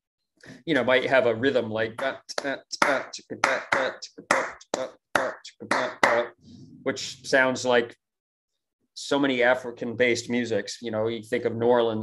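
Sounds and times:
man vocal percussion: 2.0 - 6.4.

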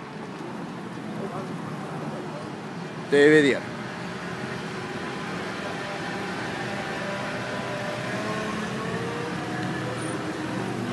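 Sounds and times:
traffic and vehicle engines: 0.0 - 10.9.

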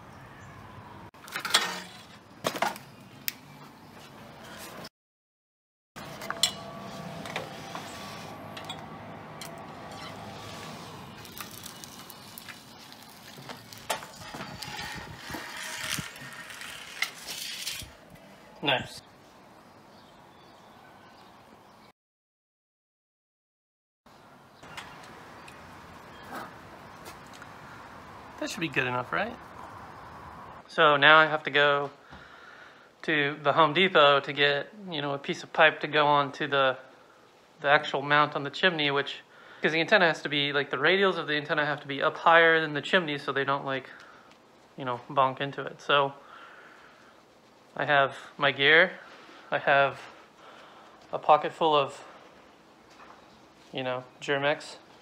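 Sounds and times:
distant traffic rumble: 6.0 - 17.0, 24.1 - 32.1.

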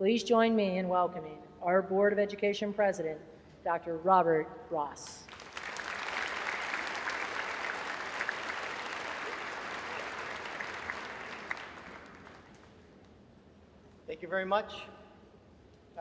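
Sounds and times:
large audience applauding: 5.3 - 12.8.

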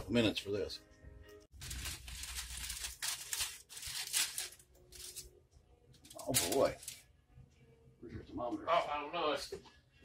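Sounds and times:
aluminum foil crinkling: 1.5 - 5.3, 6.0 - 7.1.

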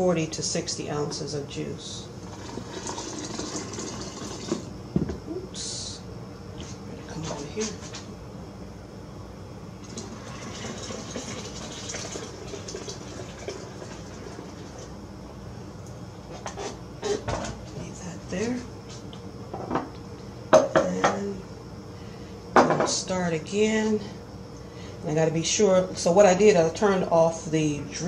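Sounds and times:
juice pouring into container: 2.2 - 4.7, 9.8 - 15.0
jug and dishes clinking: 20.6 - 21.2.

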